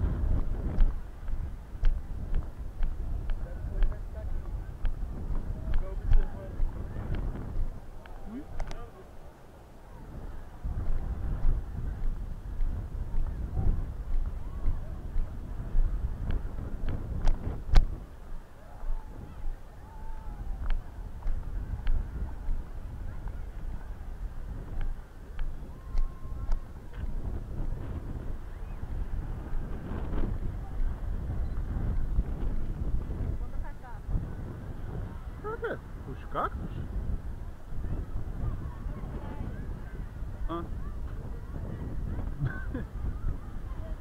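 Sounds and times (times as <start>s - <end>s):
faint distant voices: 0.0s - 44.0s
wind buffeting microphone: 0.0s - 44.0s.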